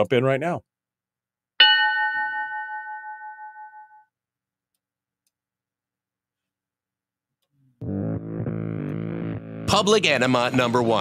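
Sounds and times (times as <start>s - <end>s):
bell-like chime: 1.6s - 4.1s.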